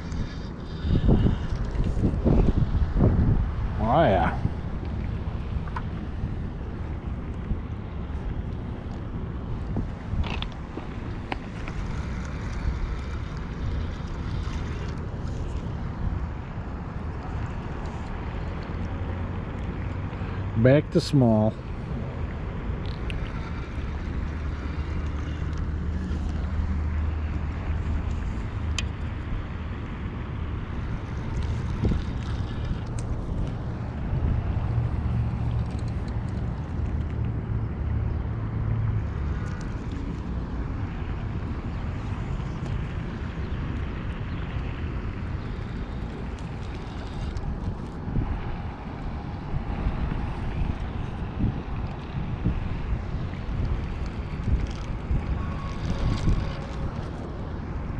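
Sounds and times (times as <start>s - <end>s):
wind buffeting microphone: 0.0s - 20.6s, 21.6s - 57.9s.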